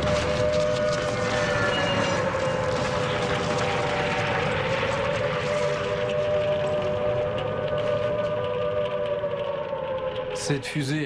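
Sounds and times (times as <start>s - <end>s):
air-raid siren wailing: 0.0s - 11.0s.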